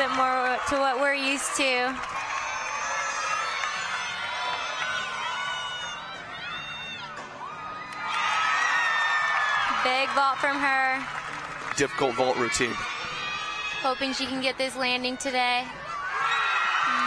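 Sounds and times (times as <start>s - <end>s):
crowd cheering and whooping: 0.0s - 17.0s.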